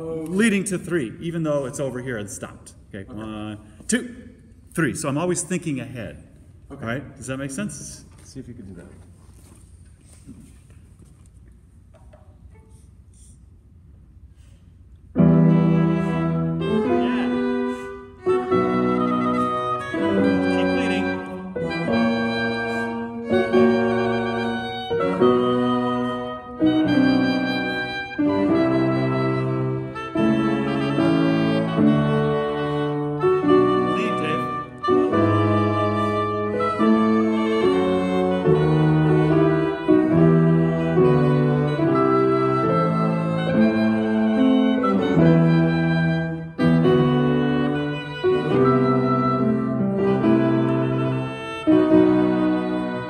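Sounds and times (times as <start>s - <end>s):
instrumental ensemble playing chords: 15.2s - 53.0s.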